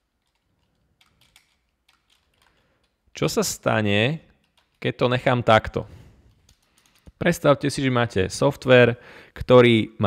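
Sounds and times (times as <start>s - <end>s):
computer keyboard keystrokes: 0.2s - 3.0s.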